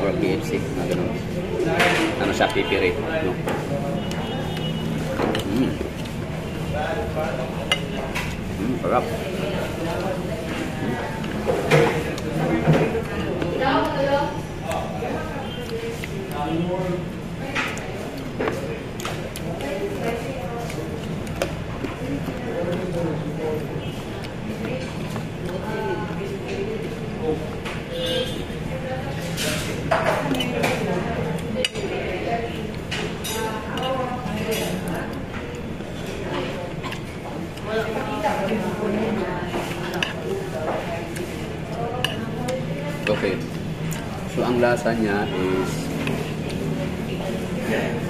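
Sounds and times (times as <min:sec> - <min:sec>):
murmur of voices: 0:00.0 - 0:48.0.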